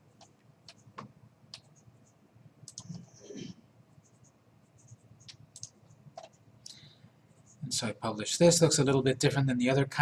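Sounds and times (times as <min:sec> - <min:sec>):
computer mouse clicks: 0:00.2 - 0:03.4, 0:04.0 - 0:07.6.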